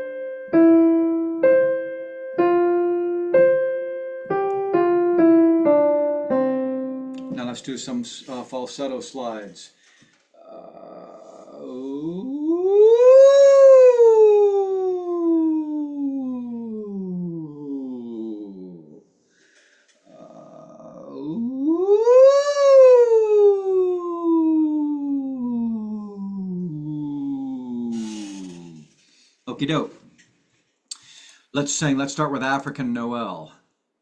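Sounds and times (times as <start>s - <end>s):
person singing vocal slides: 10.4s - 19.1s, 20.0s - 29.1s.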